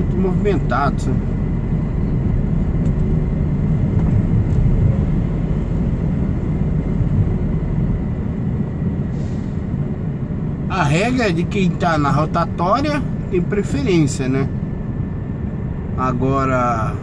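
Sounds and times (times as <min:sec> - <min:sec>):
diesel truck engine rumble: 0:00.0 - 0:17.0
road noise: 0:00.0 - 0:17.0.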